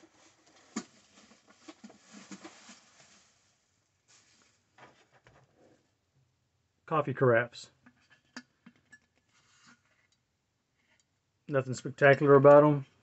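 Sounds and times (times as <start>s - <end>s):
rustling and handling noises: 0.0s - 6.0s, 7.8s - 10.2s.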